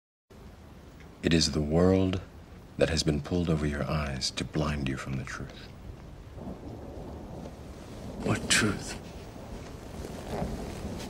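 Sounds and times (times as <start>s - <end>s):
rain: 0.3s - 11.0s
low rumble of thunder: 0.4s - 11.0s.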